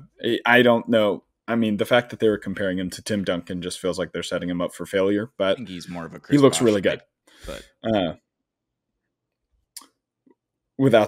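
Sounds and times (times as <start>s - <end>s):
man saying uh: 0.0s - 3.4s, 5.0s - 8.2s.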